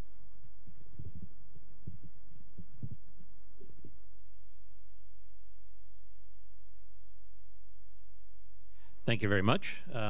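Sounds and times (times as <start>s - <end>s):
low mains hum: 0.0s - 10.0s
microphone handling thuds: 0.9s - 4.0s.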